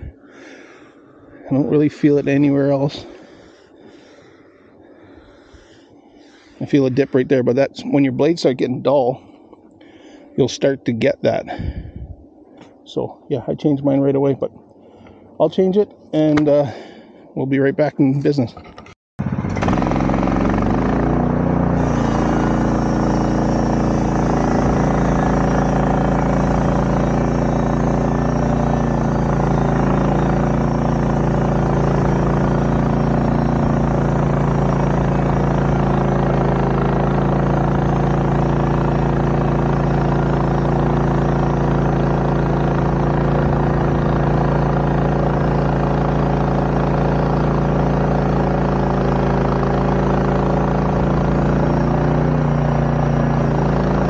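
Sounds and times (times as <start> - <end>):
engine running steadily: 0.0 - 54.0.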